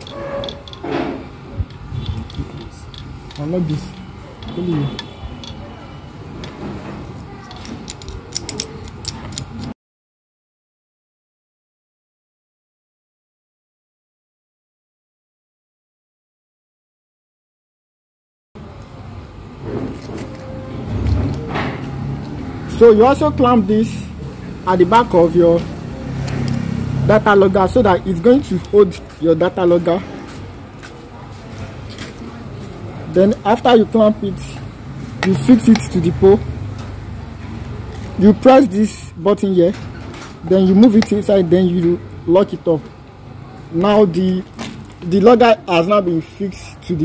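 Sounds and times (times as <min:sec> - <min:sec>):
steady low background hum: 0:00.0 - 0:09.8.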